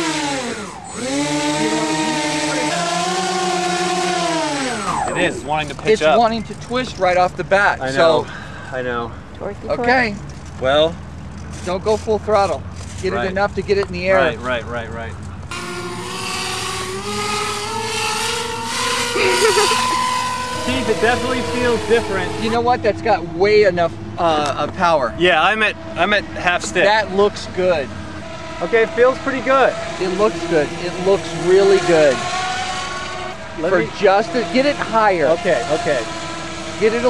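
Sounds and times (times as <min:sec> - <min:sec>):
electric motors and propellers whining: 0:00.0 - 0:07.0, 0:15.5 - 0:23.6, 0:24.3 - 0:37.0.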